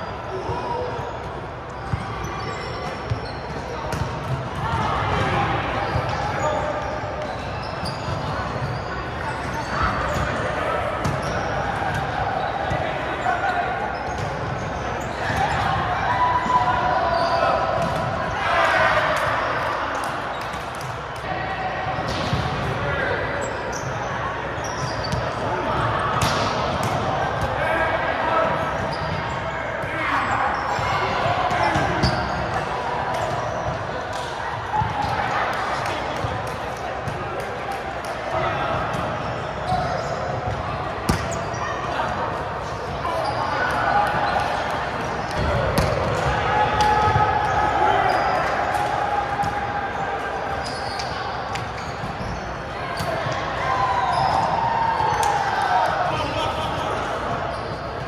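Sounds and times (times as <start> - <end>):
many voices talking and calling: 0.0 - 58.0
volleyballs hit and bouncing: 0.4 - 16.5, 17.4 - 18.4, 19.0 - 24.0, 24.9 - 27.7, 30.7 - 53.6.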